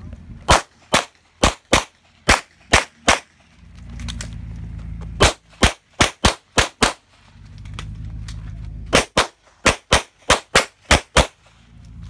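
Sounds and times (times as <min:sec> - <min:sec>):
pistol shots: 0:00.5 - 0:03.4, 0:05.2 - 0:07.1, 0:08.9 - 0:11.5
low rumble: 0:02.0 - 0:06.0, 0:07.0 - 0:09.6, 0:11.4 - 0:12.0.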